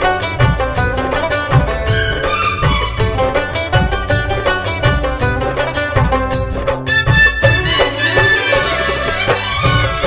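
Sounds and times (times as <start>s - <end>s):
plucked strings melody: 0.0s - 10.0s
steady drum beat: 0.0s - 10.0s.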